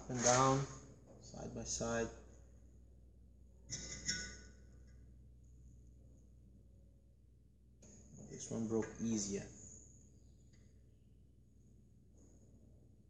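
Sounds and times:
metallic creak and scrape: 0.0s - 0.8s
faint room hum: 0.0s - 13.0s.

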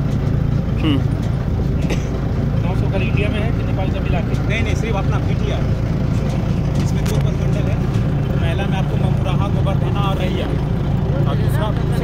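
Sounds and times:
vehicle engine running: 0.0s - 12.0s
voices talking: 0.7s - 12.0s.

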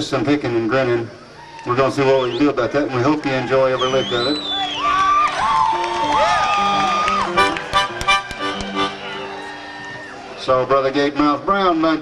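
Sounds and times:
audience whistling: 1.4s - 10.4s
audience cheering: 1.4s - 11.0s
hand claps: 5.5s - 9.0s.

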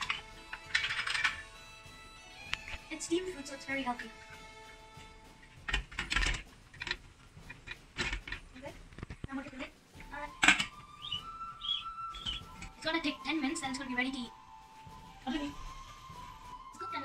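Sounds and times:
steel pot and plates clinking: 0.0s - 1.4s
background music: 0.0s - 17.0s.

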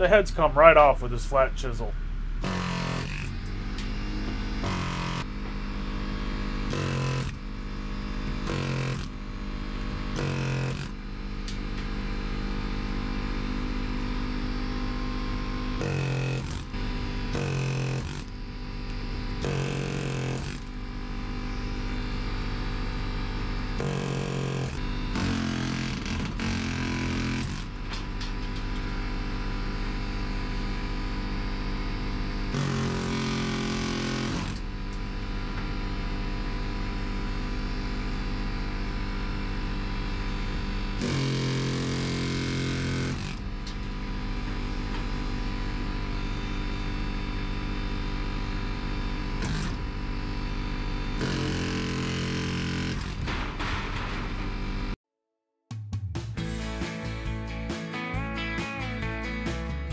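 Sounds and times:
steady mechanical drone: 0.0s - 55.0s
pneumatic air chisel hammering metal: 2.4s - 5.4s, 6.7s - 7.5s, 8.3s - 9.3s, 10.1s - 11.8s, 15.8s - 20.9s, 23.8s - 28.8s, 32.5s - 35.0s, 41.0s - 44.0s, 49.4s - 50.0s, 51.2s - 54.9s.

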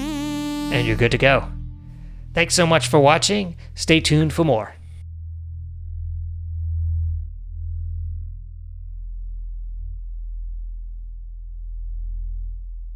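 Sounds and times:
deep electronic drone: 0.0s - 12.9s.

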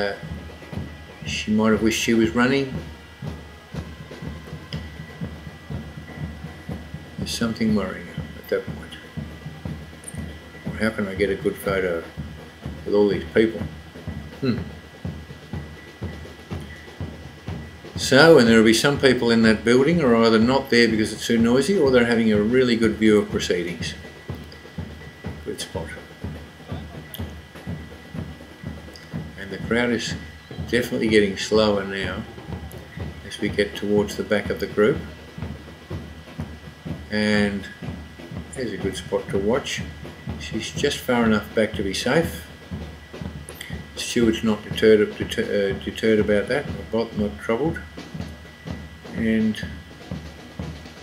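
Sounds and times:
faint steady high tone: 0.0s - 12.2s, 28.2s - 35.3s
rhythmic low thumping: 0.0s - 51.0s
runners' footsteps on road: 0.0s - 51.0s
steady drum beat: 0.0s - 51.0s.

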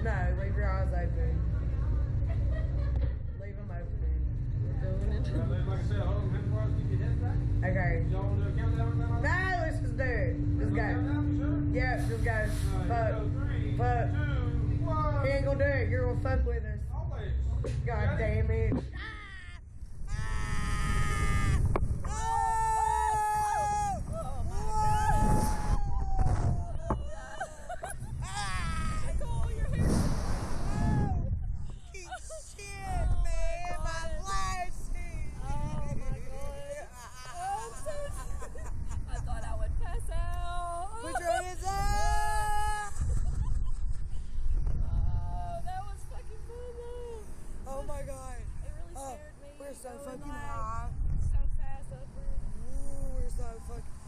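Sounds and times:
low rumble: 0.0s - 49.4s, 50.4s - 54.0s
women screaming: 19.0s - 29.5s, 30.6s - 31.4s, 36.8s - 38.7s, 41.0s - 43.1s.

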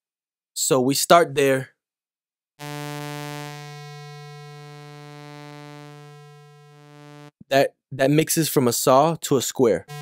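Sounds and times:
sustained low synthesizer note: 2.6s - 7.4s.

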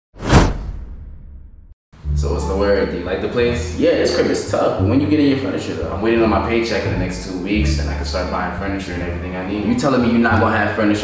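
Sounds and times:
low rumble: 2.0s - 3.8s.

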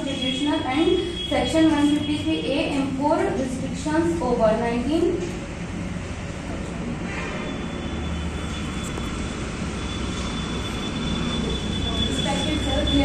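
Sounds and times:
thin high whine: 7.2s - 13.0s.

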